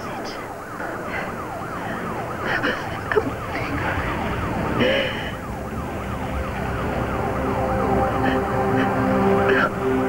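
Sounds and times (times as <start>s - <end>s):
emergency siren yelping: 0.0s - 10.0s
low sustained music notes: 0.0s - 10.0s.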